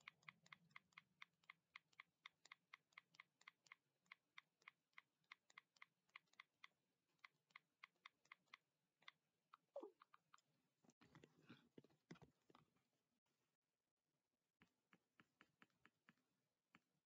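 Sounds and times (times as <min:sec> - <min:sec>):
typing on a computer keyboard: 0:00.0 - 0:10.3.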